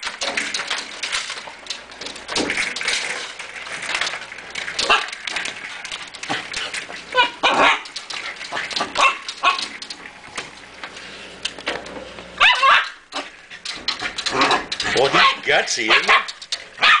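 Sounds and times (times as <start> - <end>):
dog barking and whining: 7.1 - 8.0, 8.7 - 9.8, 12.4 - 13.3, 14.2 - 17.0.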